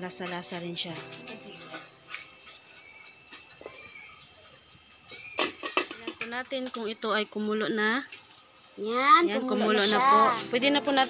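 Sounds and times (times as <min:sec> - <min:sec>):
metal pot lid clattering: 0:05.1 - 0:06.3.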